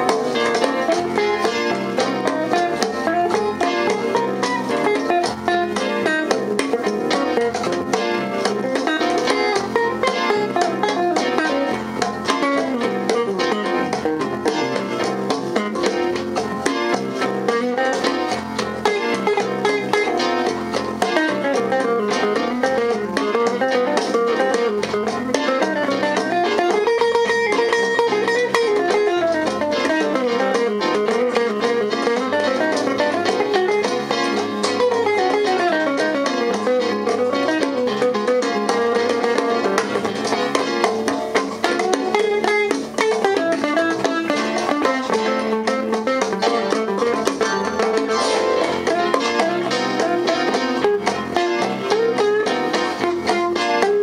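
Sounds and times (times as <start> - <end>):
live funk jazz band: 0.0 - 54.0.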